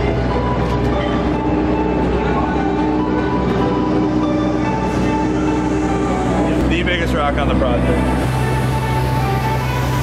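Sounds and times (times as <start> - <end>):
excavator engine running: 0.0 - 10.0.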